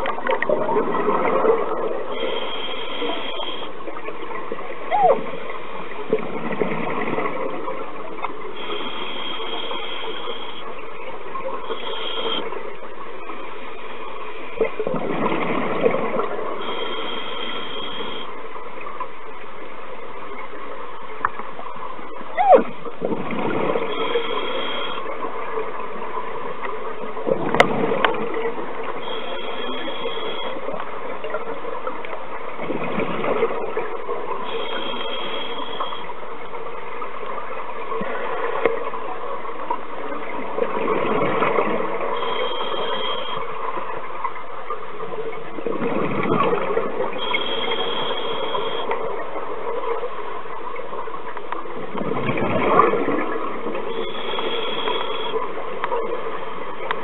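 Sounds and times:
exhaled bubbles underwater: 0:00.0 - 0:57.0
steady underwater drone: 0:00.0 - 0:57.0.

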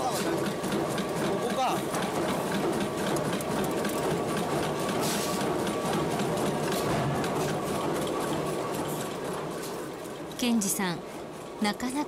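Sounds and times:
power hammer striking sheet iron: 0:06.2 - 0:08.2.

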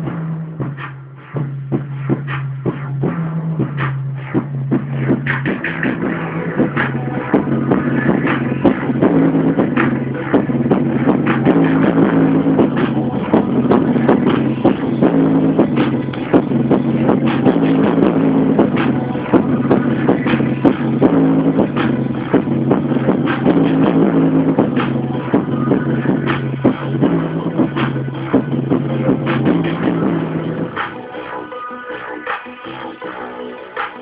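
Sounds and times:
music with steady beat and bass: 0:00.0 - 0:34.0.

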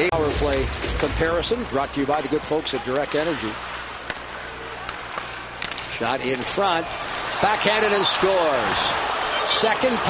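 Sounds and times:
hockey sticks and puck clicking: 0:02.0 - 0:03.3, 0:04.0 - 0:07.3.

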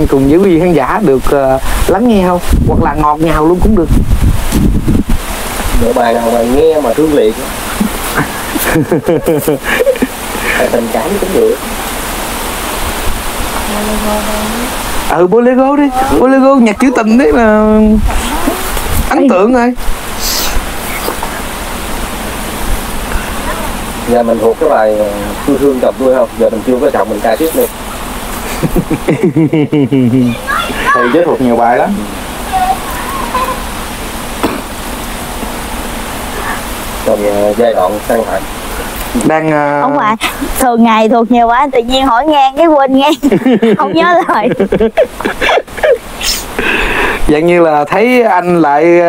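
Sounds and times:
microphone rushing hiss: 0:00.0 - 0:49.0.

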